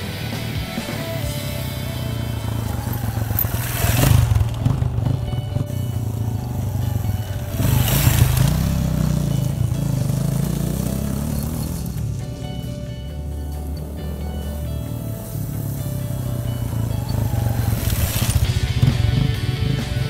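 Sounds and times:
background music: 0.0 - 20.0
motorcycle engine revving: 0.0 - 20.0.

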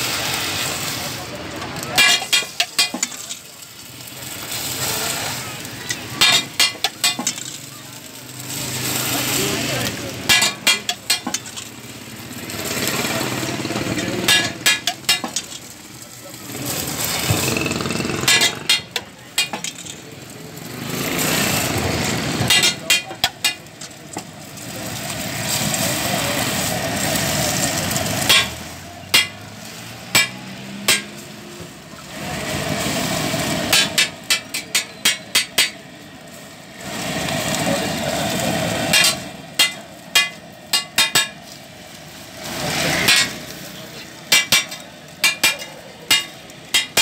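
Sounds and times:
egg sizzling on a griddle: 0.0 - 47.0
metal spatula clinking on griddle: 2.0 - 3.4, 5.9 - 7.7, 10.2 - 11.7, 14.2 - 15.7, 22.5 - 24.0, 30.1 - 31.2, 33.7 - 35.8, 38.9 - 41.5, 44.3 - 47.0.

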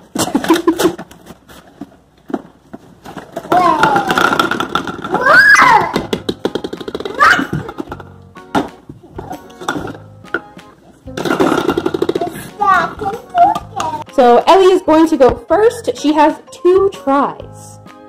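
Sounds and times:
plastic toys rattling in box: 3.0 - 8.1, 11.1 - 14.0
child squealing: 5.1 - 6.0, 7.1 - 7.7
children's excited voices: 5.1 - 6.0.

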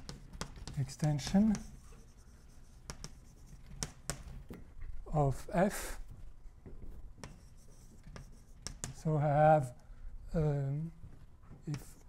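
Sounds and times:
chalk scratching on blackboard: 0.0 - 4.3, 7.2 - 9.0
chalk taps: 0.0 - 4.7, 6.6 - 9.1, 11.6 - 12.0.

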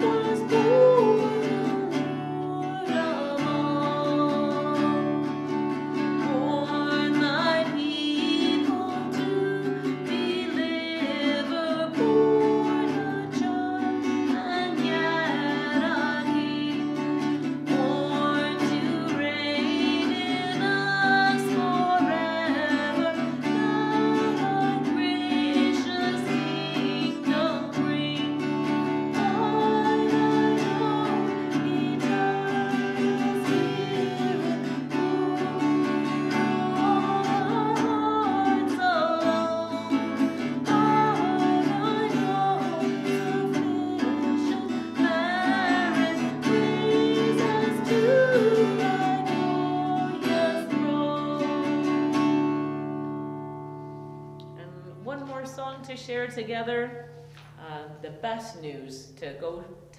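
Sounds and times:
woman singing: 0.0 - 53.4, 54.4 - 59.9
strummed acoustic guitar: 0.0 - 57.7.

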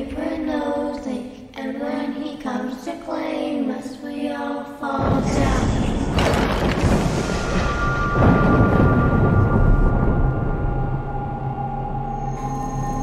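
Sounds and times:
thunder-like rumble with rushing: 5.0 - 11.7
eerie held music tones: 7.6 - 13.0.

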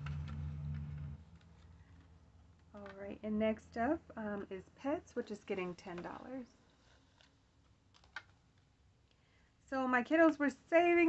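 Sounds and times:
low steady hum: 0.0 - 6.9.

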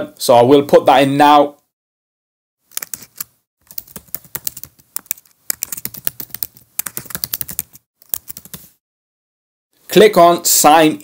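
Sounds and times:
computer keyboard typing: 2.7 - 8.7.

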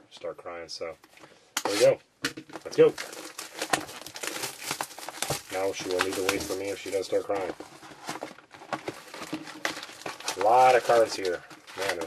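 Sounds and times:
plastic shrink wrap crackling: 2.5 - 12.0.

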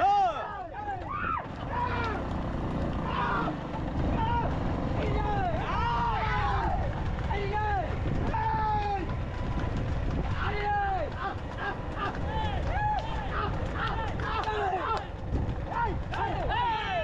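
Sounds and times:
men yelling and whooping: 0.0 - 9.5, 10.2 - 17.0
low rumble of moving cart: 0.0 - 17.0.

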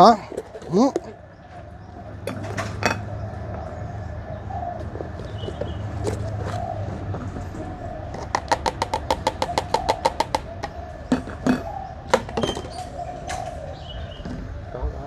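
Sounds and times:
doves cooing: 0.0 - 15.0.

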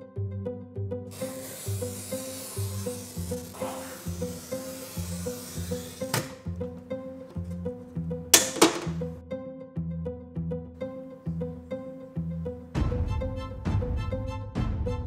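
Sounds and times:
plucked-string background music: 0.0 - 15.0
glass cutter scoring glass: 1.1 - 7.6, 8.4 - 9.1
sharp knocks: 8.4 - 9.1.

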